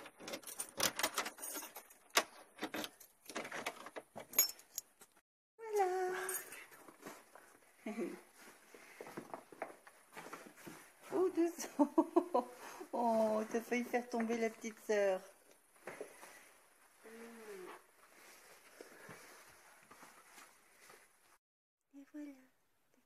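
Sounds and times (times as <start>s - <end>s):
keys jangling at door: 0.0s - 5.2s.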